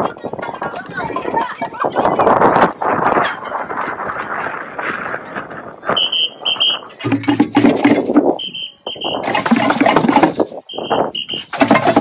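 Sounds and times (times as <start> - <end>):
crowd of marching children: 0.0 - 12.0
shrill whistle blasts: 6.0 - 6.9, 8.4 - 9.3, 10.7 - 11.5
knocks and clatter: 7.0 - 8.4, 9.2 - 10.6, 11.4 - 12.0.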